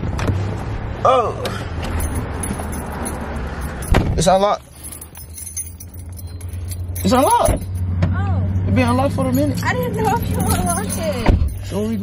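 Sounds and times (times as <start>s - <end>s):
car idling hum: 4.7s - 12.0s.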